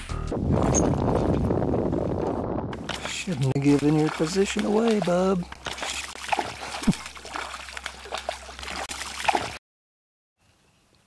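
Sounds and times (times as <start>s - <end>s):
fish splashing in water: 2.8s - 9.6s.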